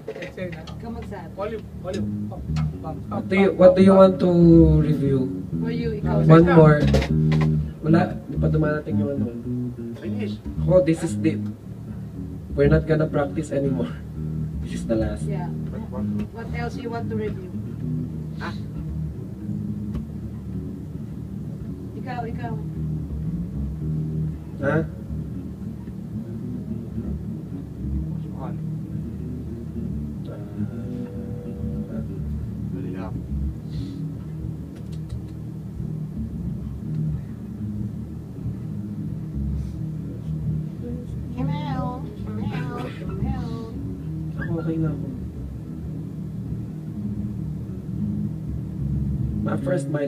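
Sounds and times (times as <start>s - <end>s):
amplifier hum and rumble: 0.0s - 50.0s
soft low instrument notes: 0.0s - 50.0s
person saying ah: 30.3s - 32.2s, 42.2s - 43.8s.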